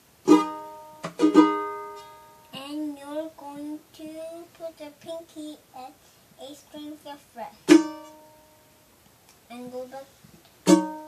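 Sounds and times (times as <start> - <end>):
ukulele chord strummed: 0.2 - 2.6, 7.7 - 8.7, 10.6 - 11.0
child's voice: 2.6 - 7.7, 9.5 - 10.2.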